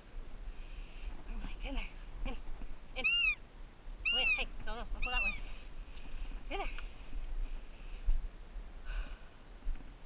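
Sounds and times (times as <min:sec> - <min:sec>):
high-pitched animal call: 0:03.0 - 0:03.4, 0:04.0 - 0:05.4.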